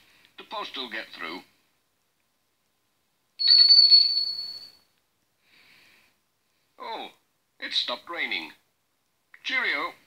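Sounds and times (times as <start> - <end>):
small bell ringing: 3.4 - 4.9.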